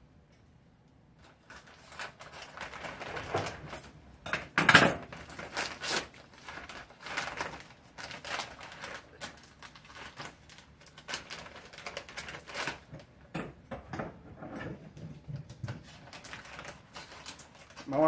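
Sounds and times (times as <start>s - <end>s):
bag crinkling and rustling: 1.2s - 4.0s, 4.8s - 13.2s, 15.6s - 18.0s.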